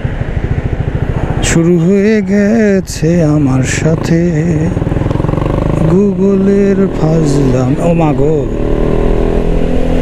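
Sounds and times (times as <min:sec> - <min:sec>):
motorcycle engine running: 0:00.0 - 0:10.0
rider's voice: 0:05.8 - 0:08.6.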